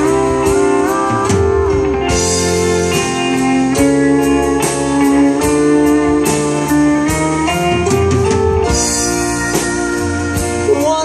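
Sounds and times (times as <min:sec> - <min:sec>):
country band playing: 0:00.0 - 0:11.0
pedal steel guitar sliding notes: 0:00.0 - 0:11.0.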